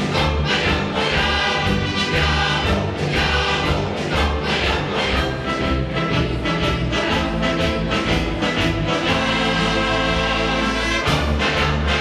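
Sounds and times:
brass and percussion band: 0.0s - 12.0s
choir singing: 0.0s - 12.0s.

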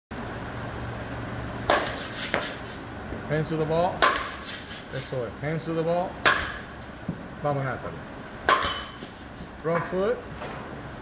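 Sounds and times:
steady low hum: 0.1s - 11.0s
bat cracking against ball: 1.6s - 2.8s, 4.0s - 4.7s, 6.2s - 6.9s, 8.4s - 9.4s.

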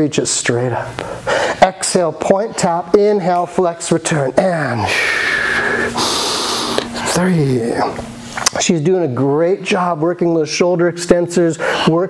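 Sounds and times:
person breathing into microphone: 4.9s - 7.1s.

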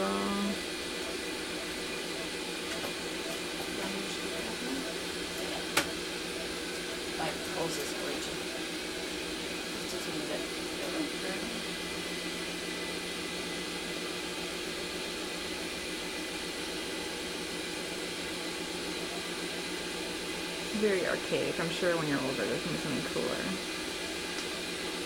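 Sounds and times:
medical equipment hum and hiss: 0.0s - 25.0s.

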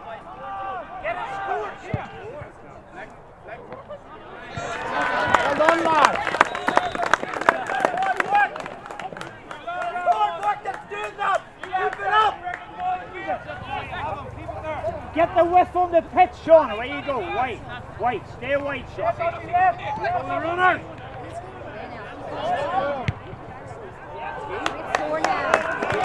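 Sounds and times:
voices shouting and calling: 0.0s - 26.0s.

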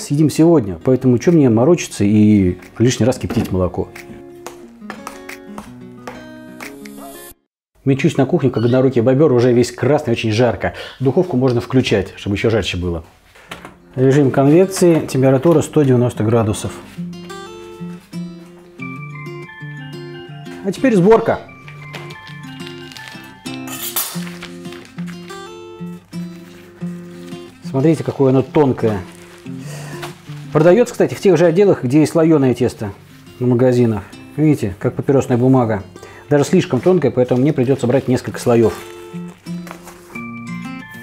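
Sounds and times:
plucked acoustic guitar melody: 1.0s - 7.3s, 13.7s - 31.5s, 32.5s - 41.0s
melody of held notes: 17.4s - 27.7s, 38.7s - 41.0s.

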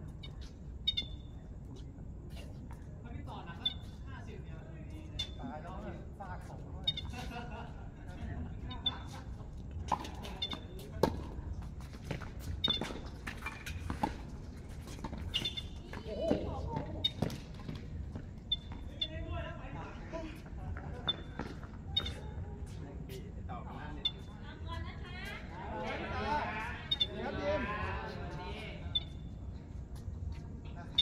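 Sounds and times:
tennis balls bouncing on hard court: 12.0s - 18.8s
players' voices: 14.5s - 18.0s, 18.8s - 31.0s.

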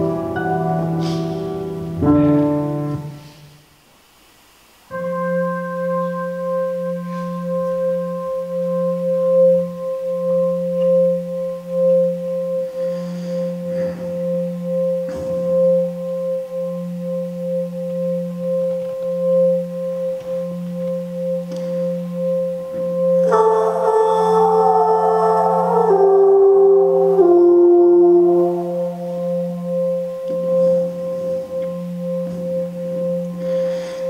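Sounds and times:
sustained musical drone: 0.0s - 3.4s, 4.9s - 34.0s.

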